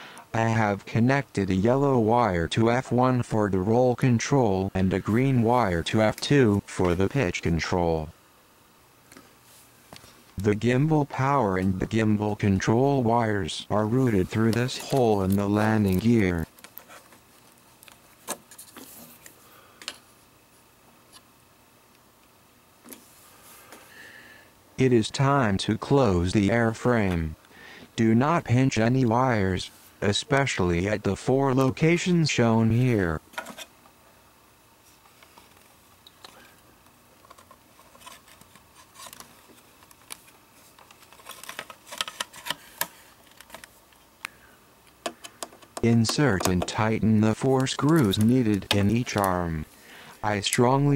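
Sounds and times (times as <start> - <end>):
plastic parts clicking and rubbing: 14.1 - 20.0, 37.2 - 44.3, 44.9 - 49.4.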